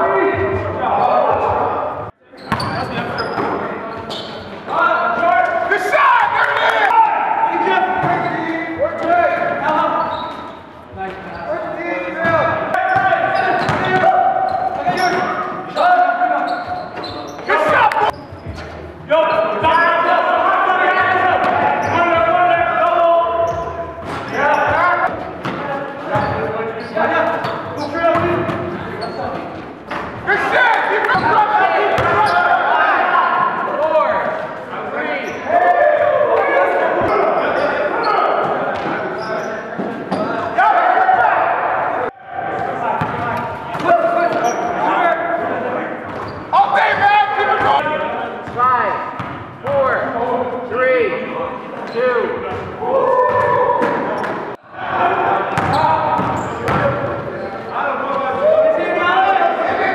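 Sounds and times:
voices in echoing hall: 0:00.0 - 0:59.9
basketball bouncing on gym floor: 0:02.5 - 0:03.5.

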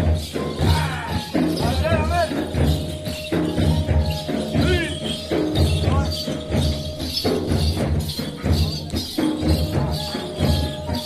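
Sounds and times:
drums beating steadily: 0:00.0 - 0:11.0
jingling percussion: 0:00.0 - 0:11.0.

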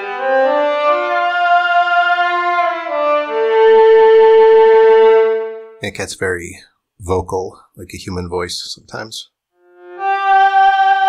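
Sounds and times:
synth cello phrase with sliding notes: 0:00.0 - 0:05.8, 0:09.6 - 0:11.0.

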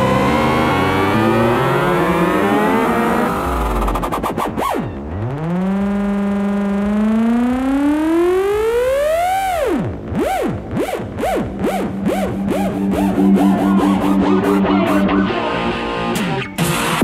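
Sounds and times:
distorted synth lead sweeping: 0:00.0 - 0:17.0.

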